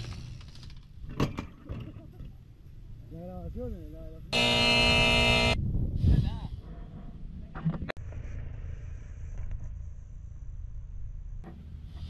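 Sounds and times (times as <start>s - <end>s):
harsh buzzer: 4.3s - 5.6s.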